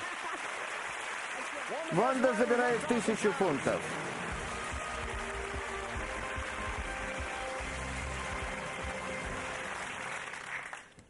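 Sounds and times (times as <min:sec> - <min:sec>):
audience applauding: 0:00.0 - 0:11.0
background music: 0:02.0 - 0:10.7.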